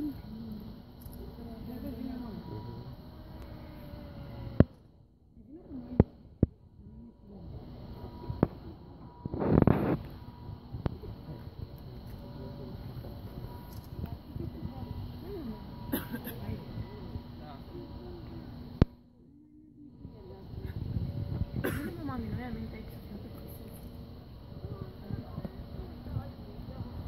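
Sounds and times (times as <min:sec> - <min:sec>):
people talking: 0:00.0 - 0:04.6, 0:05.4 - 0:27.0.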